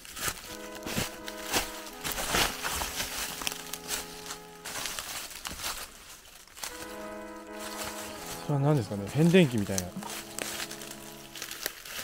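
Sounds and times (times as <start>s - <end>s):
dry leaves crackling underfoot: 0.0s - 12.0s
music of sustained chords: 0.4s - 5.2s, 6.6s - 12.0s
man speaking: 8.3s - 10.4s.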